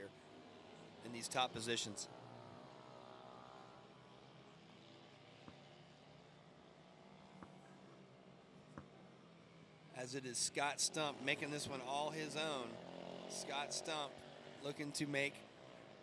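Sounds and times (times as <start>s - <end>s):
minibike engines running: 0.0s - 16.0s.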